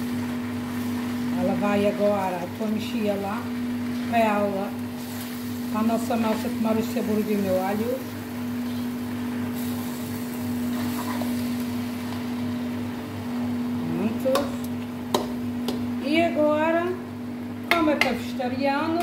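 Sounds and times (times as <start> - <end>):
steady hum: 0.0 - 19.0
metal spoon stirring in wok: 10.6 - 11.5.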